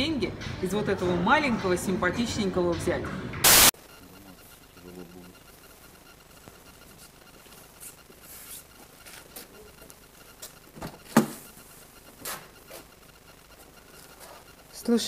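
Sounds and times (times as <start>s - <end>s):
loud burst of hiss: 3.4s - 3.7s.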